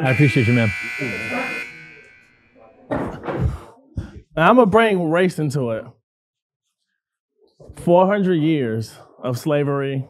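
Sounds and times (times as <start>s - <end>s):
people talking: 0.0s - 1.6s, 2.8s - 5.9s, 7.7s - 10.0s
high-pitched electronic buzzer: 0.0s - 2.6s.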